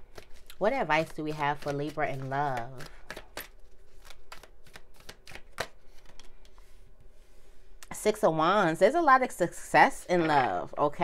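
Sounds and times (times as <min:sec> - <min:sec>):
cards shuffling: 0:00.1 - 0:06.8.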